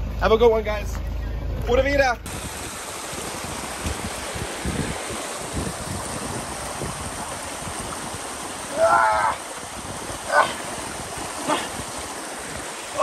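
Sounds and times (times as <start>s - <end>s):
stream rushing over rocks: 2.3s - 13.0s.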